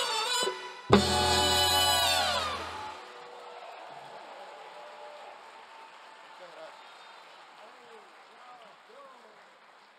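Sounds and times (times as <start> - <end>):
horns sliding down in pitch: 0.0 - 3.2.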